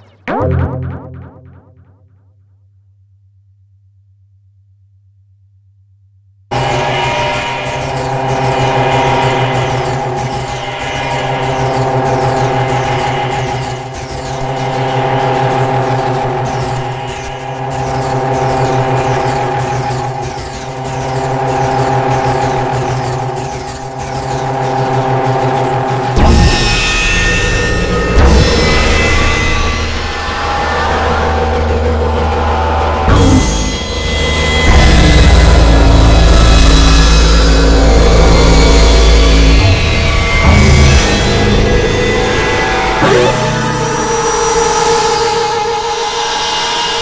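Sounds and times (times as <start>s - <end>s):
high falling synth sweeps: 0.0s - 2.1s
synthesizer drone: 0.0s - 2.4s, 6.5s - 46.6s.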